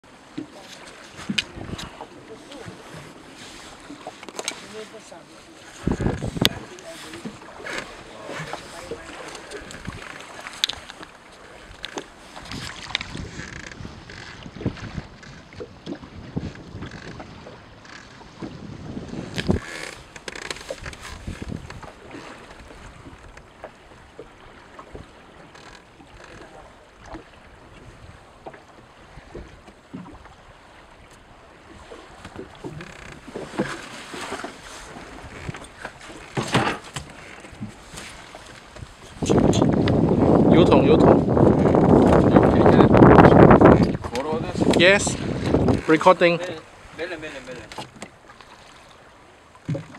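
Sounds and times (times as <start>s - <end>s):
water lapping against boat hull: 0.0s - 49.9s
wind on microphone: 1.1s - 3.9s, 5.6s - 23.4s, 34.6s - 47.0s.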